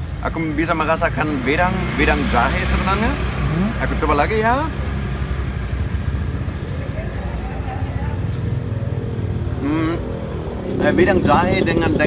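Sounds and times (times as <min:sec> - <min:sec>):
traffic engine rumble: 0:00.0 - 0:12.0.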